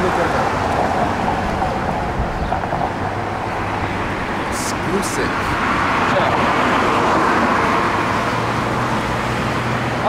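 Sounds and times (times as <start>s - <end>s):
car passing: 0.0s - 10.0s.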